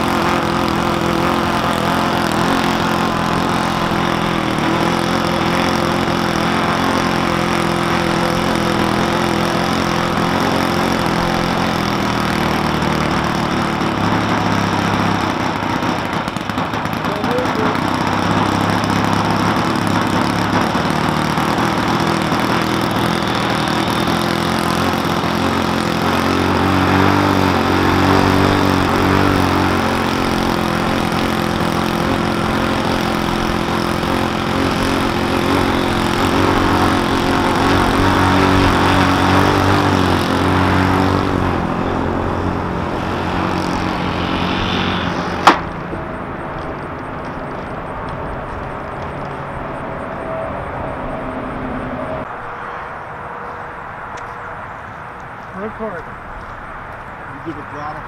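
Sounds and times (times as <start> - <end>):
model airplane engine running: 0.0 - 52.2, 55.5 - 56.5.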